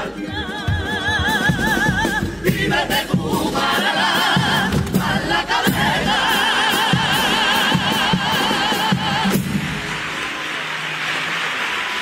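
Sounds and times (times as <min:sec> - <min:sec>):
male chorus singing: 0:00.0 - 0:09.5
bass drum and cymbal beat: 0:00.0 - 0:09.7
guitar: 0:00.0 - 0:12.0.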